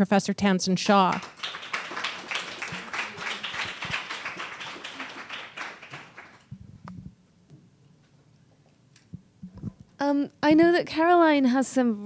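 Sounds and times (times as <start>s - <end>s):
audience applauding: 1.0s - 6.5s.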